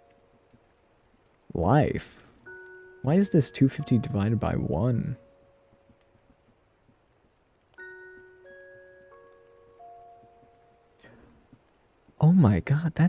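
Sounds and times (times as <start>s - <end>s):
soft chime notes: 2.5s - 5.8s, 7.8s - 11.1s.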